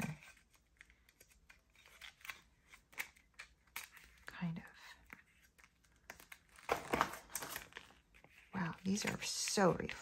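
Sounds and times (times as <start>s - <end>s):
cards being shuffled: 0.0s - 4.3s.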